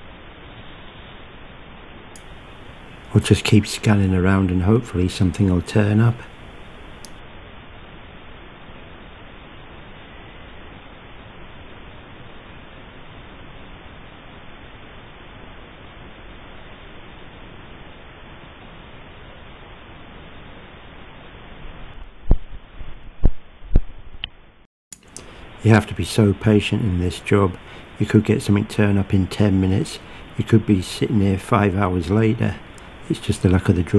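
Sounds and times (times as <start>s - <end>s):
microphone hiss: 0.0s - 33.9s.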